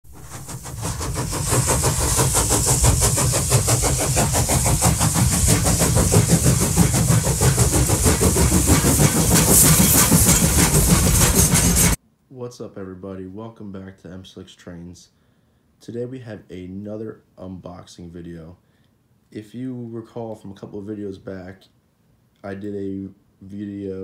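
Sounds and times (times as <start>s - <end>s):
train running: 0.0s - 12.0s.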